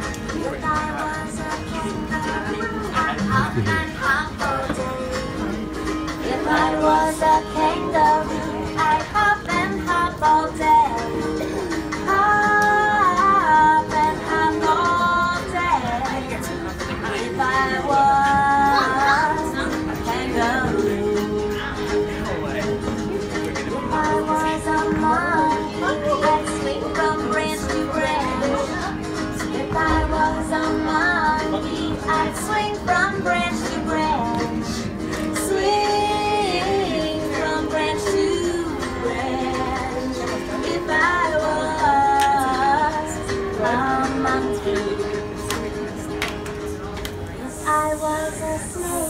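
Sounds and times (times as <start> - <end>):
woman singing: 0.0 - 22.1, 23.5 - 46.4, 47.4 - 49.0.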